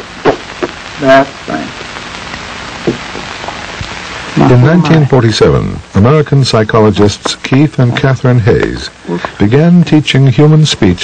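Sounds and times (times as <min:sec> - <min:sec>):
old film soundtrack hiss and crackle: 0:00.0 - 0:11.0.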